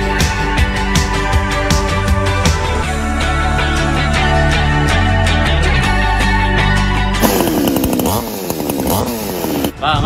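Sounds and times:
chainsaw engine revving: 7.2 - 9.8.

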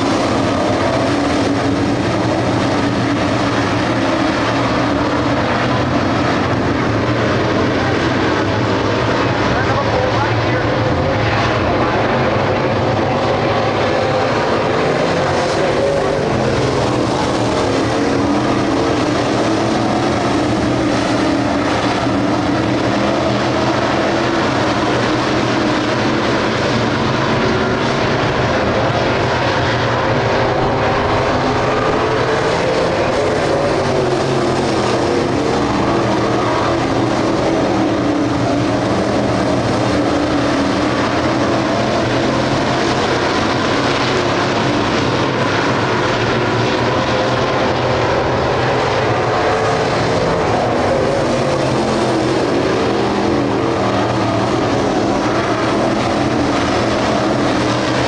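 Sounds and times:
race car engines racing: 0.0 - 58.0.

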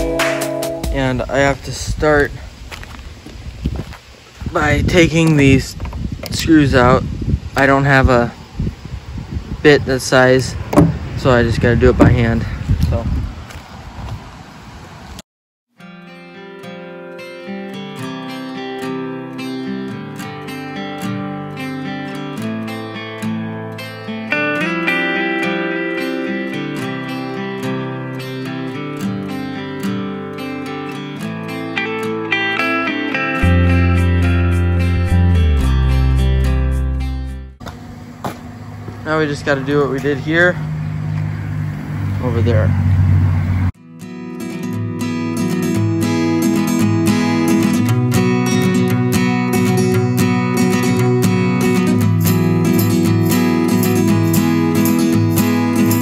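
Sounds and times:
acoustic guitar music: 0.0 - 1.9, 15.8 - 42.0, 43.7 - 56.0
wind noise on microphone: 0.9 - 15.2
low outdoor background: 18.4 - 56.0.

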